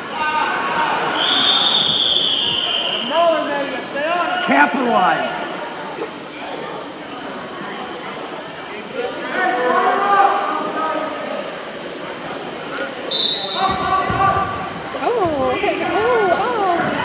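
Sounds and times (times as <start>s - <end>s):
voices echoing in a gymnasium: 0.0s - 17.0s
referee's whistle blast: 1.2s - 3.2s, 13.1s - 13.9s.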